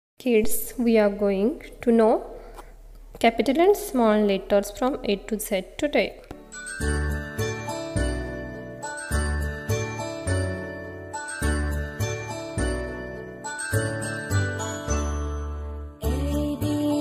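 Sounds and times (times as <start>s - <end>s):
chiming bell-like melody: 6.4s - 16.1s.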